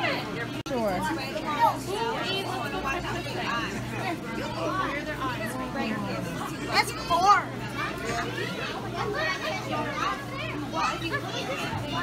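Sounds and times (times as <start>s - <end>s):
background chatter: 0.0s - 12.0s
children's voices: 1.3s - 12.0s.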